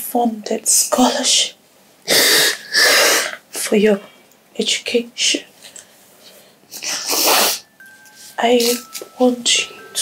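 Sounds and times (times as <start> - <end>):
person sniffing: 2.1 - 3.4, 6.9 - 7.6.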